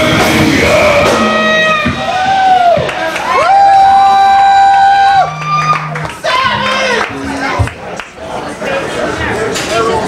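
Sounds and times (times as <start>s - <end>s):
live rock band playing: 0.0s - 2.2s.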